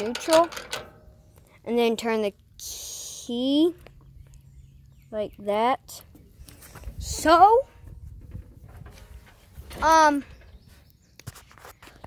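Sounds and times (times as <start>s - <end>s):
child saying um: 1.6s - 3.8s.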